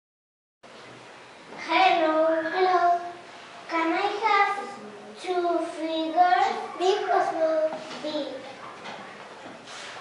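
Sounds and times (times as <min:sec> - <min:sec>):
child calling sing-song: 0:01.7 - 0:03.2.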